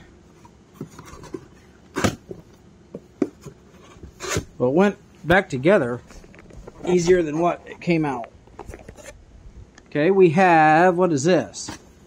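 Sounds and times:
cardboard boxes rustling: 0.3s - 4.6s
sharp cardboard scrape: 3.8s - 4.5s.

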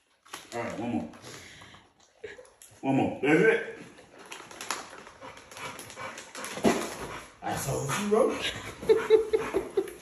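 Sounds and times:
plastic package crinkling: 0.0s - 1.3s, 4.0s - 7.0s.

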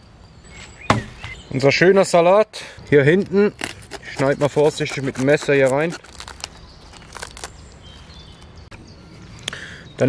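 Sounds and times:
lettuce leaves rustling: 2.9s - 8.5s
knife crunching through lettuce: 3.1s - 7.7s.

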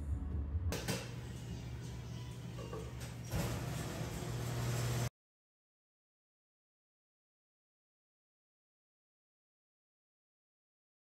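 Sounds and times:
low hum of shop room noise: 0.0s - 5.1s.

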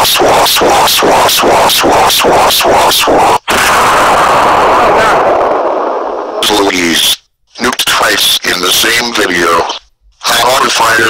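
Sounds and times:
loud explosion: 3.5s - 6.4s.

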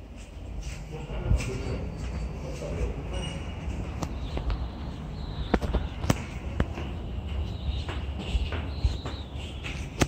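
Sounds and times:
footsteps on concrete stairs: 0.0s - 10.0s.

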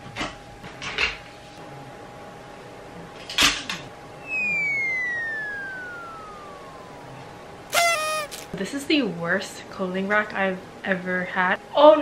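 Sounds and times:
descending whistle: 4.2s - 8.5s.

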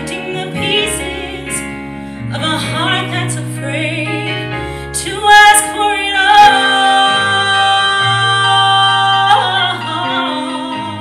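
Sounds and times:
electric bass: 0.0s - 11.0s
keyboard: 0.0s - 11.0s.

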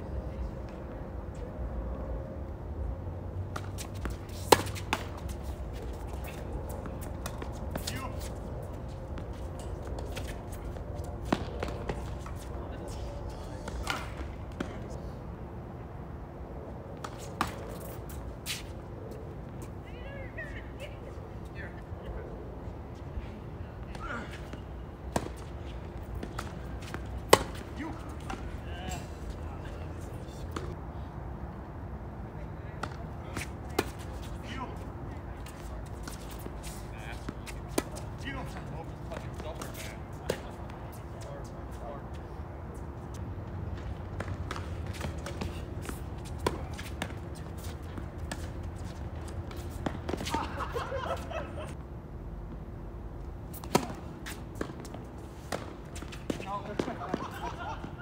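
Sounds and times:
tennis ball struck by rackets: 3.5s - 8.3s, 11.2s - 12.4s, 13.6s - 14.8s, 23.9s - 28.6s, 53.5s - 57.4s.

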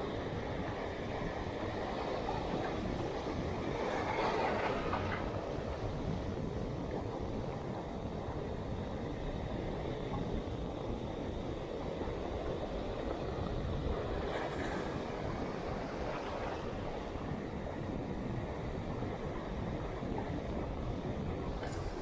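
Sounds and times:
surf washing on beach: 0.0s - 22.0s.

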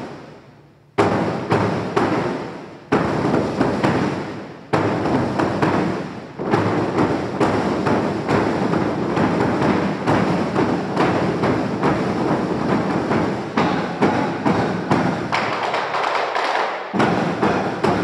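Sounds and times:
wooden barrel drums struck: 1.0s - 18.0s.

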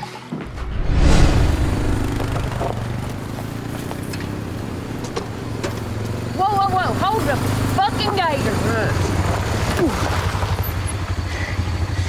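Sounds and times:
utility vehicle engine droning: 0.4s - 12.0s.

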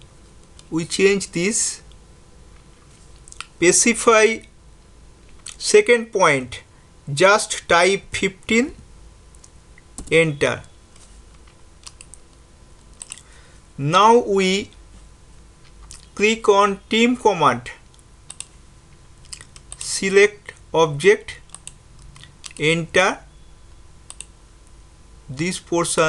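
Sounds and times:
low room noise: 0.0s - 26.0s
low steady hum: 0.0s - 26.0s
mouse and keyboard clicks: 17.9s - 18.6s
faint mouse click: 24.1s - 24.3s.

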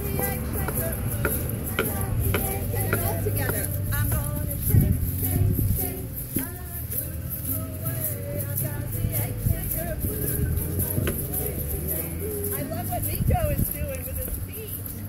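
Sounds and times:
egg shakers shaken: 0.0s - 15.0s
woman singing: 0.0s - 15.0s.

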